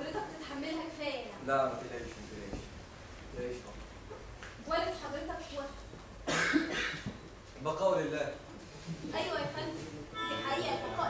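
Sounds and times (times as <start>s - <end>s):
harsh cough-like vocal outburst: 6.2s - 7.1s.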